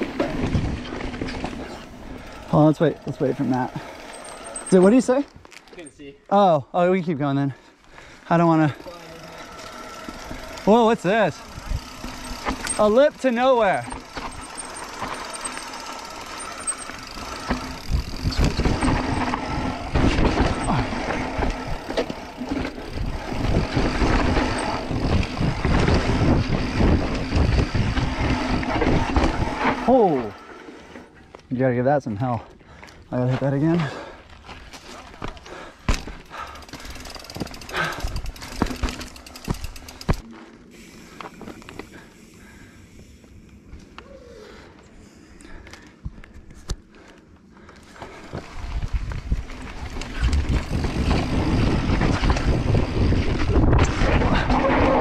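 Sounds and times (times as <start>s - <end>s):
bike rattling over bumps: 0.0s - 6.0s, 8.0s - 31.0s, 31.6s - 43.9s, 45.5s - 55.0s
bike tyres rolling on dirt: 0.0s - 55.0s.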